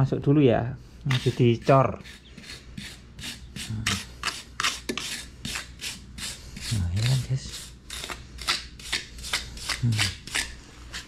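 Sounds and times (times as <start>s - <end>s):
putty knife scraping mortar: 1.0s - 11.0s.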